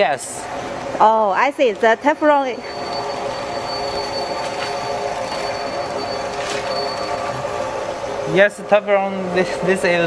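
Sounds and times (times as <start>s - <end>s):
machine humming: 0.0s - 10.0s
faint high whine: 2.4s - 10.0s.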